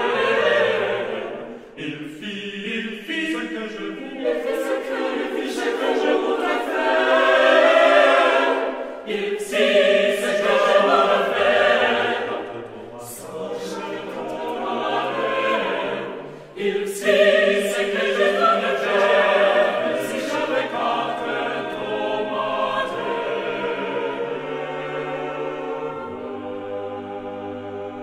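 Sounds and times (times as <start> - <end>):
choir singing unaccompanied: 0.0 - 28.0.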